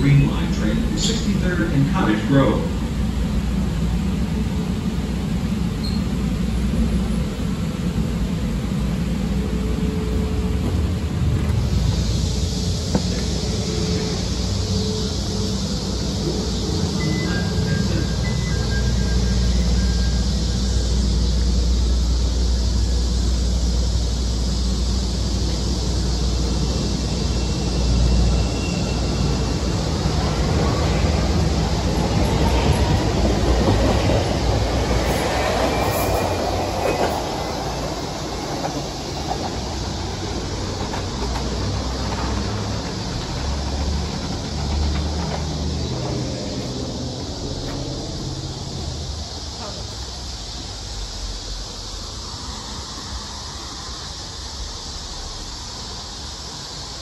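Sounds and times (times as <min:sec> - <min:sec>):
train rumble and hum: 0:00.0 - 0:57.0
train wheel and motor noise: 0:00.0 - 0:57.0.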